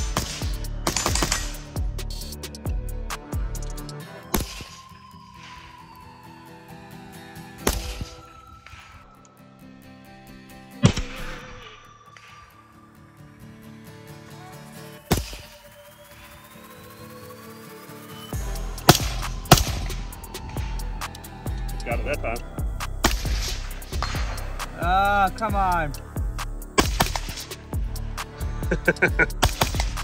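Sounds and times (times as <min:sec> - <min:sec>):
suppressed rifle shots: 0:00.0 - 0:01.6, 0:18.9 - 0:20.0, 0:23.0 - 0:24.4, 0:26.8 - 0:27.5, 0:29.4 - 0:30.0
background music: 0:00.0 - 0:30.0.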